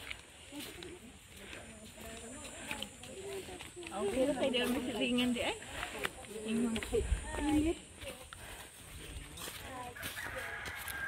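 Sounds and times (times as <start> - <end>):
people talking in snatches: 0.4 - 10.2.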